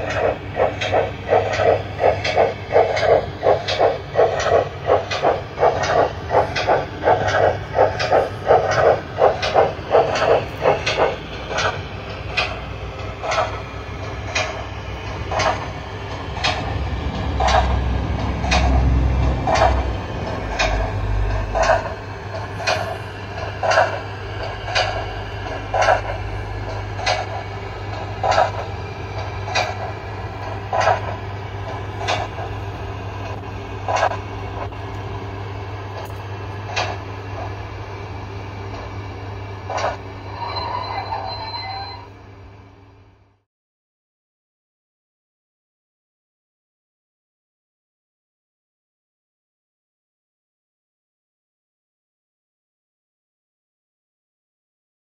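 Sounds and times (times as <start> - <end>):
model steam locomotive chuffs: 0.0 - 43.2
model train rumbling on track: 0.0 - 43.4
steady hum: 0.0 - 43.4.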